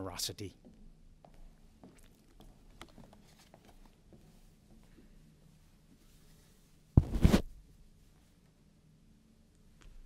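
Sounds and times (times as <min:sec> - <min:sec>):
microphone knock: 0:07.0 - 0:07.5
microphone scraping and rustling: 0:07.0 - 0:07.6.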